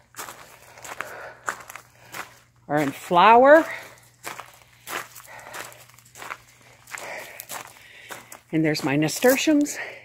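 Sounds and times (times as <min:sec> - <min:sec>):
footsteps walking outdoors: 0:00.0 - 0:10.0.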